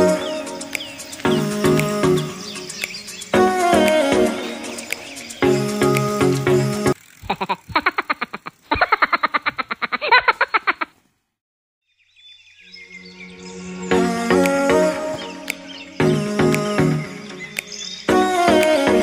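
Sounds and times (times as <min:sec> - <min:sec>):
background music: 0:00.0 - 0:07.0, 0:12.9 - 0:19.0
rapid uneven pulses: 0:00.0 - 0:08.8.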